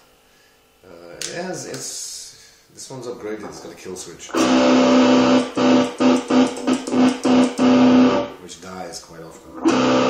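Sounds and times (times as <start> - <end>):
electric guitar note stuttering: 3.5 - 8.4, 9.5 - 10.0.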